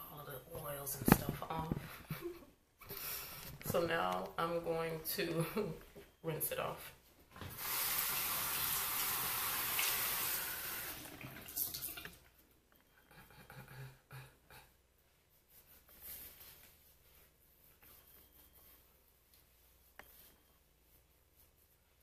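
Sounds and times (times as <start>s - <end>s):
sink tap running: 7.5s - 12.2s
faint handling sounds: 15.0s - 22.0s.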